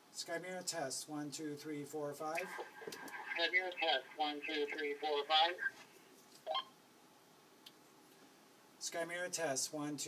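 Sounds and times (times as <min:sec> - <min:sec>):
two-way radio chirp: 0:02.4 - 0:05.8.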